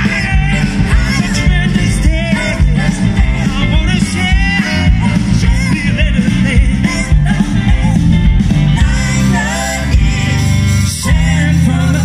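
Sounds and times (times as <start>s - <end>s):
man singing into a microphone: 0.0s - 8.2s, 10.8s - 12.0s
saxophone: 0.0s - 11.4s
rock and roll band playing: 0.0s - 12.0s.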